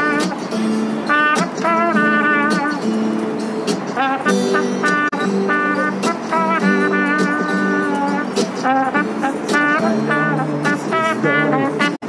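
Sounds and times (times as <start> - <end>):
strummed acoustic guitar: 0.0 - 12.0
trombone melody: 0.0 - 12.0.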